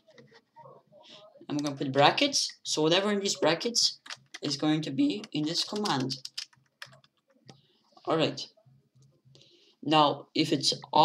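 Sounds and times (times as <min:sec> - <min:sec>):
computer keyboard key presses: 0:04.0 - 0:04.5, 0:05.2 - 0:07.2.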